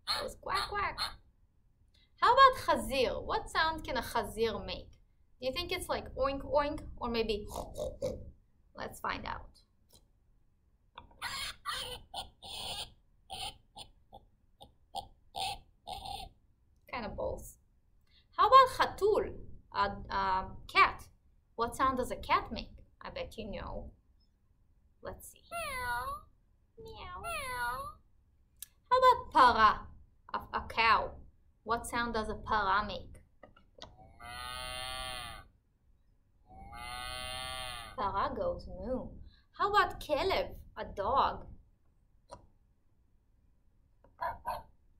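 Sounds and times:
recorded pig grunts from speaker: 7.4 - 8.3.

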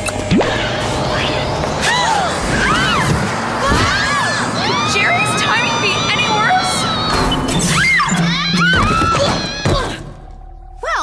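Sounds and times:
cartoon girls screaming: 1.8 - 10.0.

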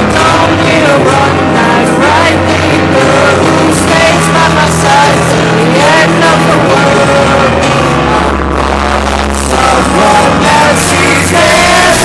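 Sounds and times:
wordless vocal line: 0.0 - 12.0.

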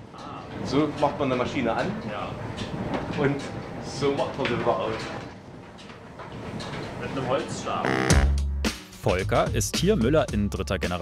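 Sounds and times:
mill machinery running: 0.0 - 8.1.

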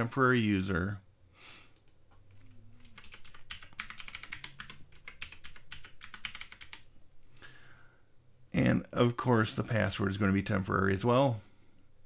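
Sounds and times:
rapid computer keyboard typing: 2.8 - 6.9.

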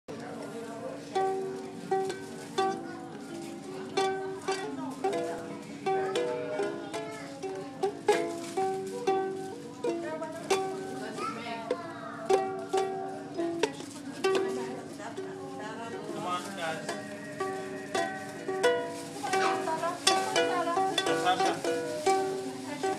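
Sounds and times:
ukulele strummed: 1.0 - 15.3, 16.8 - 22.9.

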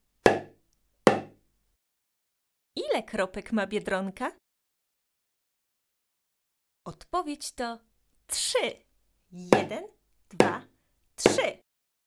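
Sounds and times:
small drum struck with mallet: 1.1 - 1.4.

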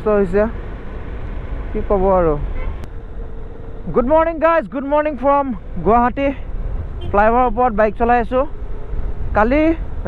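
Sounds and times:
man talking: 0.0 - 0.6, 1.8 - 2.5, 3.8 - 6.5, 7.1 - 8.5, 9.4 - 9.9
motorcycle engine rumble: 0.0 - 10.0.

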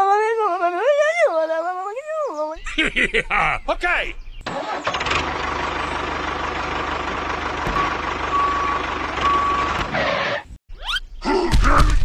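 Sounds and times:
tractor engine chugging: 4.5 - 10.0
reversing beeps: 7.8 - 9.8
grunt-like voice: 11.2 - 12.0.

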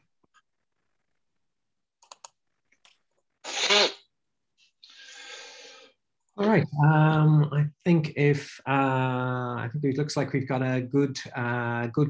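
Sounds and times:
person sneezing: 3.4 - 4.0
breathy hiss: 4.8 - 5.9.

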